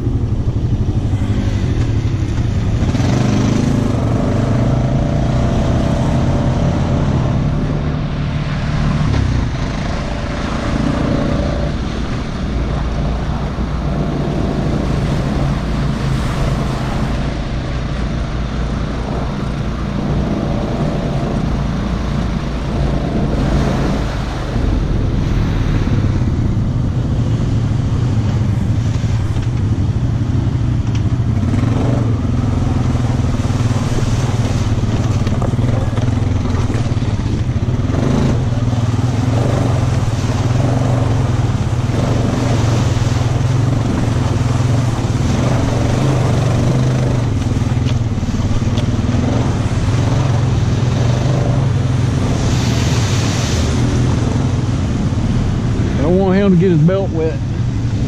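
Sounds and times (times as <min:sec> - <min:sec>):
atv engine running unevenly: 0:00.0 - 0:58.0.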